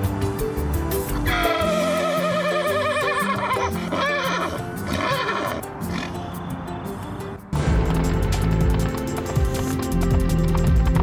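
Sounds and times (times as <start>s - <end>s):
background music: 0.0s - 11.0s
horse whinnying: 1.3s - 6.2s.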